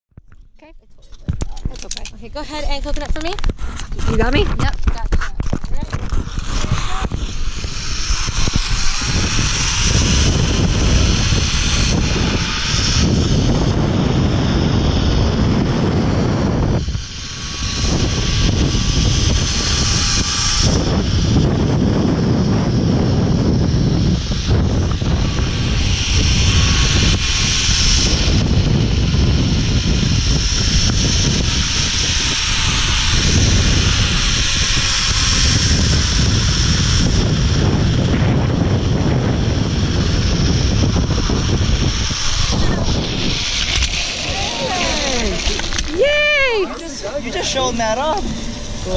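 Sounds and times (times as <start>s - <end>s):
wind rushing over microphone: 0.1s - 48.9s
zipline trolley wheels whining: 1.0s - 48.9s.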